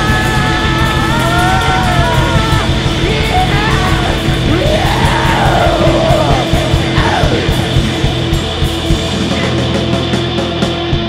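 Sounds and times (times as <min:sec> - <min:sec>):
yelled vocal note: 0:00.0 - 0:09.3
live rock band playing: 0:00.0 - 0:11.0.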